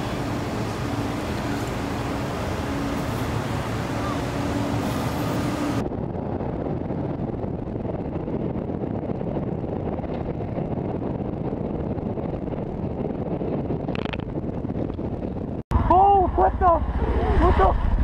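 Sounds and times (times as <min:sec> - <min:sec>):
traffic passing: 0:00.0 - 0:05.8
wind rumble on microphone: 0:00.0 - 0:18.0.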